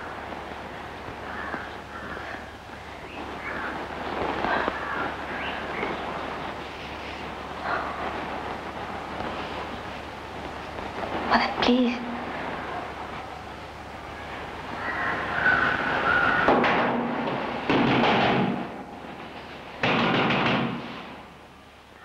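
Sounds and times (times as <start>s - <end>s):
film soundtrack hiss and hum: 0.0s - 22.0s
person breathing faintly: 4.2s - 5.7s, 6.6s - 8.4s.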